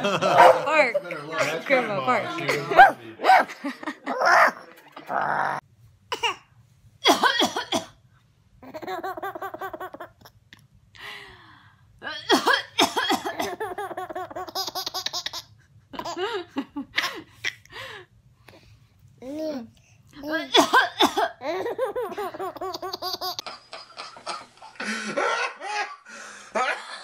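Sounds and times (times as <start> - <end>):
woman fake coughing: 7.0 - 7.9, 20.5 - 21.4
baby laughing: 8.6 - 10.4, 13.4 - 16.3, 21.4 - 24.4.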